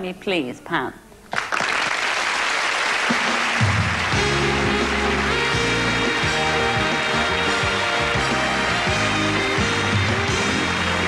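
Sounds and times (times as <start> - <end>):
studio audience applauding: 1.3 - 11.0.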